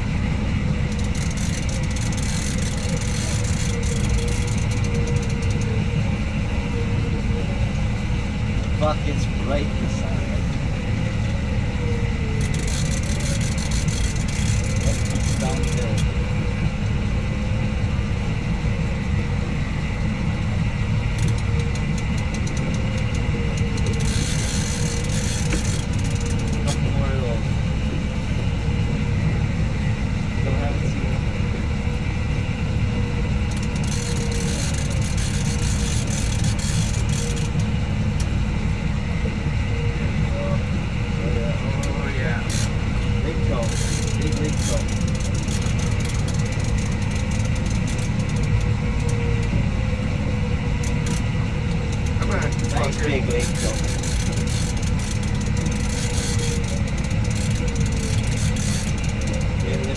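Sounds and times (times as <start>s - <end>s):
boat engine rumbling: 0.0s - 59.9s.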